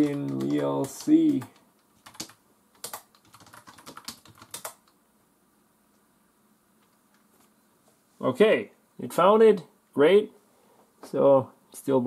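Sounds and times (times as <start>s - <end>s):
computer keyboard typing: 0.0s - 5.0s.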